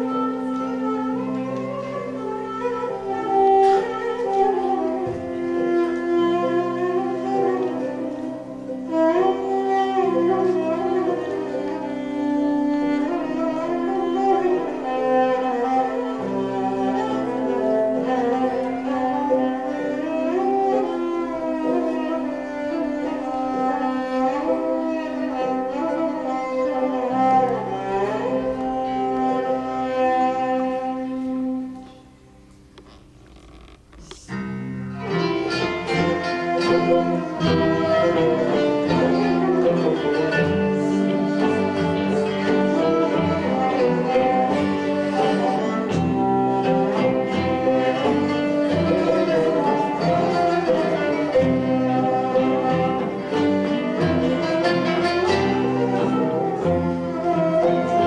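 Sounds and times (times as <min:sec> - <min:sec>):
ornamented melody with sliding notes: 0:00.0 - 0:58.0.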